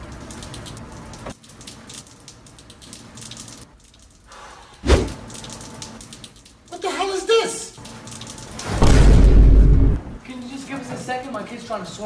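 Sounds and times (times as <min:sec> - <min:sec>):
loud deep boom: 0:08.7 - 0:10.2.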